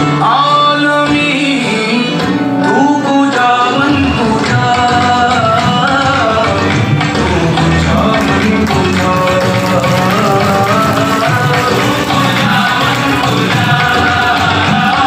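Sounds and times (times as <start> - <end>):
devotional song with percussion: 0.0 - 15.0.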